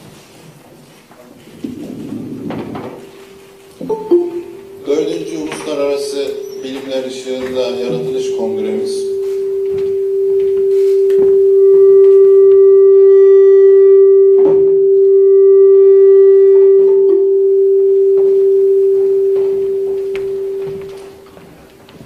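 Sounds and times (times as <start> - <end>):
feedback howl: 1.4 - 21.6
higher ringing tones: 1.7 - 21.4.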